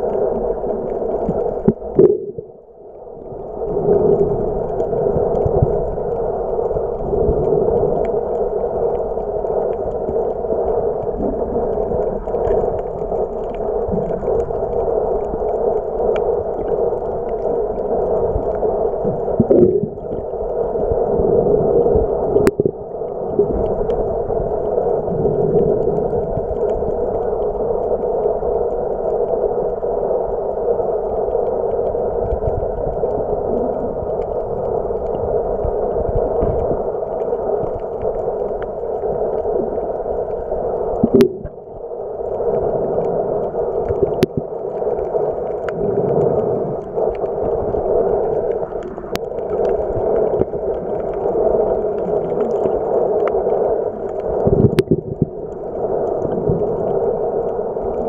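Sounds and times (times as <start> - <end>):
muffled underwater noise: 0.0 - 58.0.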